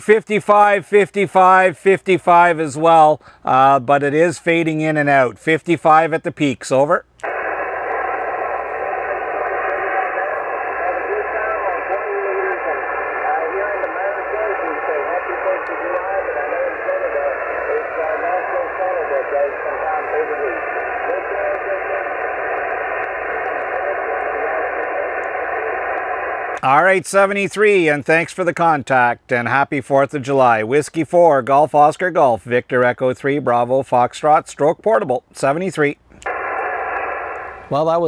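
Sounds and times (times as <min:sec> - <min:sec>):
weak voice over radio: 0:07.2 - 0:26.8
radio hiss and static: 0:07.2 - 0:27.8, 0:36.2 - 0:38.0.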